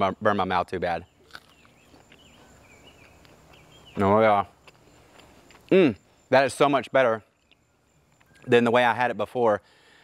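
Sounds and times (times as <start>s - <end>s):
faint high chirping: 0.5s - 10.0s.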